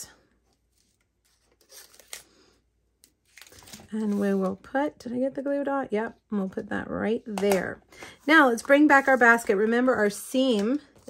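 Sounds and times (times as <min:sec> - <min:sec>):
paper crinkling: 0:00.4 - 0:04.6.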